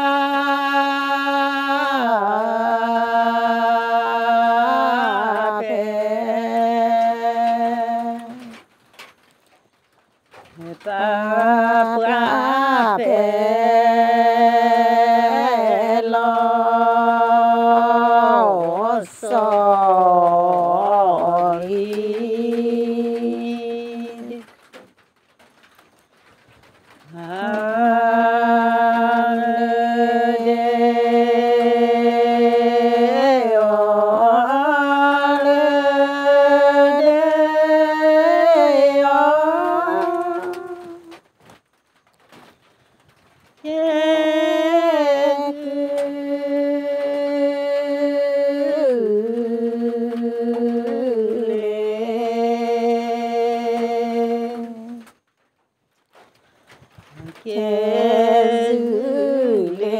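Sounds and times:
person singing melodic phrases: 0.0 - 8.6, 10.6 - 24.5, 27.1 - 41.3, 43.6 - 55.2, 57.1 - 59.9.

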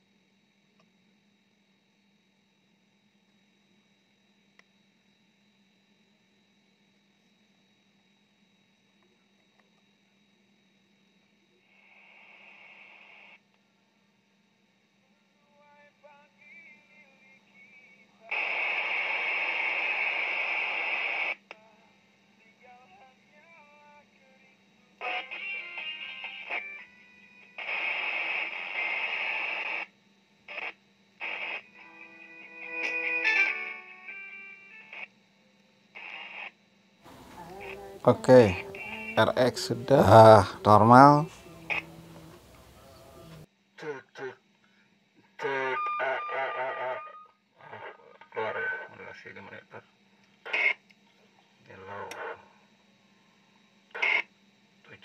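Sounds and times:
faint steady hum: 0.0 - 55.0
radio hiss bursts: 11.7 - 13.4, 18.3 - 21.5, 27.6 - 35.1, 36.0 - 43.5, 45.4 - 49.8
radio tones: 27.6 - 29.9, 30.5 - 35.1, 36.0 - 43.4, 45.4 - 49.8
voice over radio: 37.2 - 44.4, 45.4 - 49.9, 51.7 - 52.5.

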